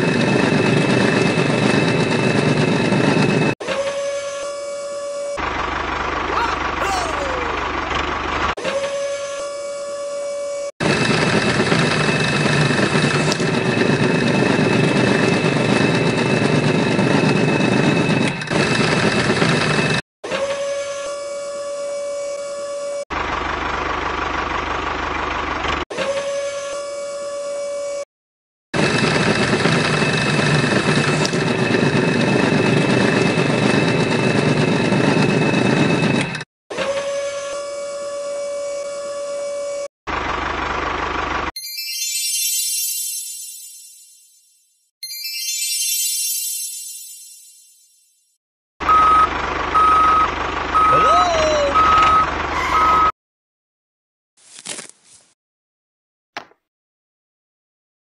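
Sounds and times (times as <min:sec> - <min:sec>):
small motor whining: 0:03.6 - 0:05.5.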